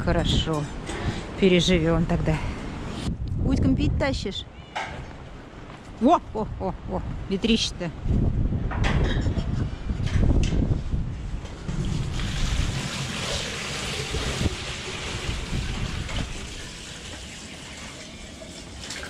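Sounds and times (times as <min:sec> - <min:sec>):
wind rumbling on microphone: 0:00.0 - 0:17.2
water pouring into a basin: 0:11.7 - 0:19.0.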